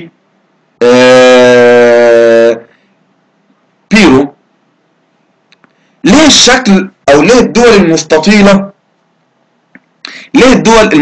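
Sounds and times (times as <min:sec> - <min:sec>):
man's hesitation vowel: 0:00.8 - 0:02.7.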